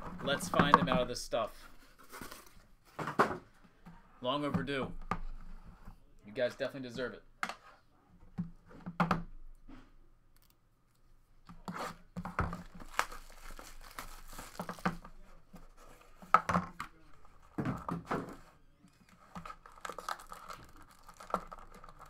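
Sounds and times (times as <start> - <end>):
shrink-wrap tearing and crinkling: 12.5 - 15.0, 19.1 - 22.0.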